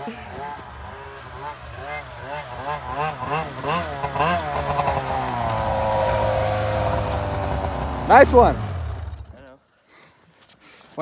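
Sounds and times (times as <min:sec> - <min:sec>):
motor engine running: 0:00.0 - 0:09.5.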